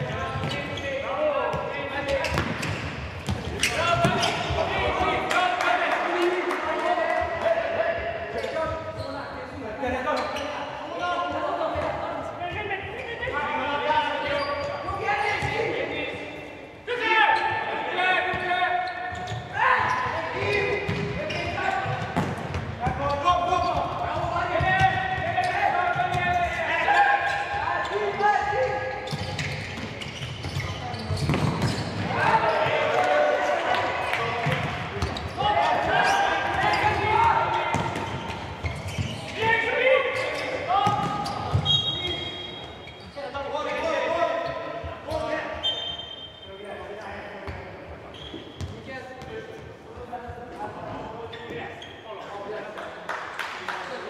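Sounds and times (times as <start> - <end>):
shouts echoing in indoor hall: 0.0 - 54.0.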